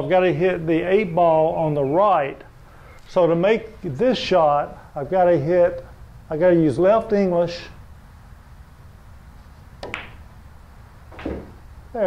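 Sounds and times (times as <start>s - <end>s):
billiard balls clicking: 9.8s - 10.3s, 11.1s - 11.7s.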